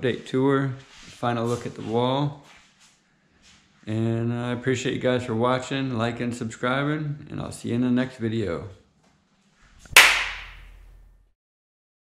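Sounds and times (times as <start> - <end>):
sharp crack: 9.9 - 10.8.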